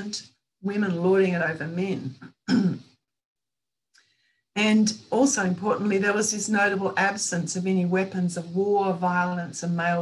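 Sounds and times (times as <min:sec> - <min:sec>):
woman clearing her throat: 0:02.4 - 0:02.9.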